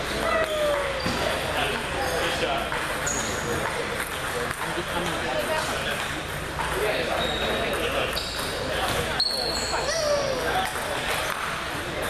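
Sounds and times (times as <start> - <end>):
voices in a hall: 0.0 - 12.0
table tennis balls clicking: 0.3 - 9.1, 10.4 - 12.0.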